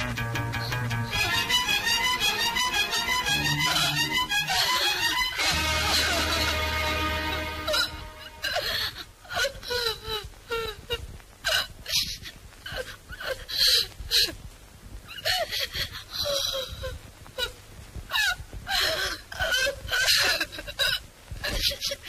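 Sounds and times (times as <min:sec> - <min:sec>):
woman crying and wailing: 0:01.1 - 0:14.4, 0:15.2 - 0:22.0.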